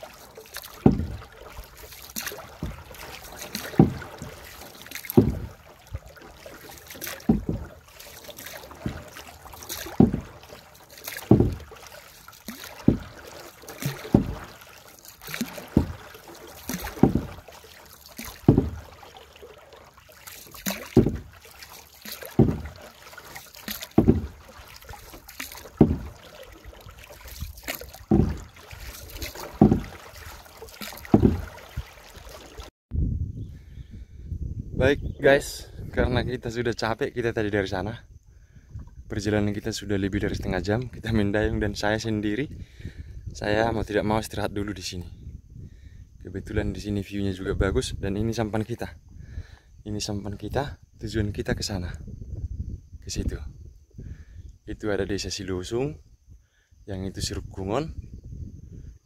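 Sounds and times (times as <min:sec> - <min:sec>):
paddle splashing in water: 0:00.0 - 0:32.7
soft water wash: 0:00.0 - 0:32.7.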